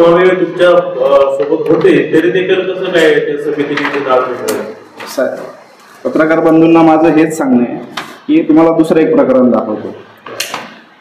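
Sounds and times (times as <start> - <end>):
paper rustling: 3.4 - 6.6.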